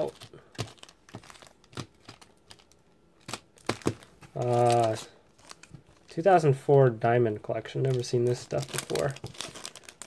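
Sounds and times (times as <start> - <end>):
light taps on wrappers: 0.0 - 6.1, 7.8 - 10.0
foil wrappers crinkling: 0.0 - 6.4, 7.7 - 10.0.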